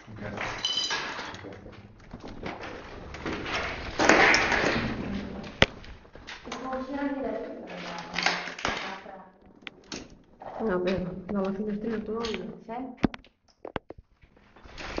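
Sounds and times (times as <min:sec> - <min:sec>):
rustling burst: 0:02.4 - 0:06.4.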